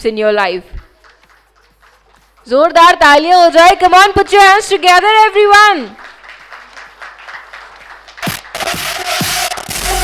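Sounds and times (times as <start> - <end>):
light scattered applause: 0.8 - 2.6, 5.5 - 10.0
electronic dance track: 8.2 - 10.0.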